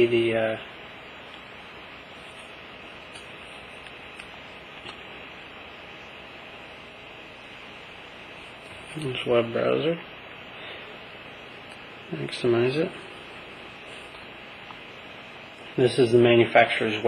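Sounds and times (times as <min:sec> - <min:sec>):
recording hiss: 0:00.0 - 0:17.0.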